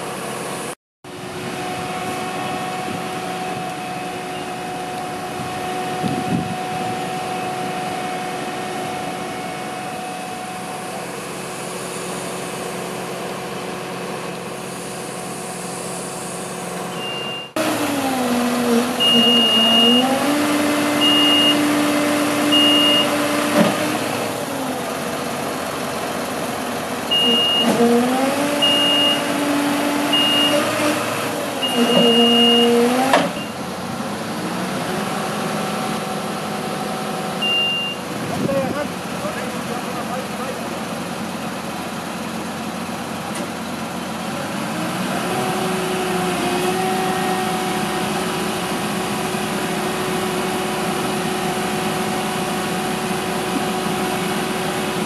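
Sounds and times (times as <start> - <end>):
truck engine revving: 1.2 - 55.0
high warning beeper: 16.9 - 17.6, 19.0 - 20.1, 27.1 - 27.7, 31.6 - 32.8, 37.4 - 38.0.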